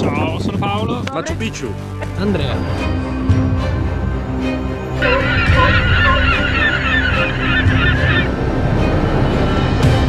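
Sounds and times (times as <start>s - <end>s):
background music: 0.0s - 10.0s
flock of birds chattering: 5.0s - 8.3s.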